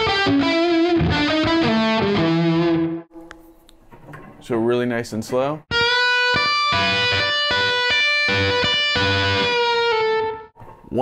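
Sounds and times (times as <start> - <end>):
electric guitar blues lick: 0.0 - 3.1, 5.7 - 10.6.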